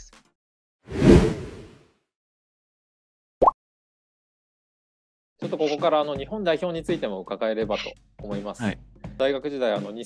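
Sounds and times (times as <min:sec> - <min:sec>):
whoosh sound effect: 0:00.9 - 0:01.8.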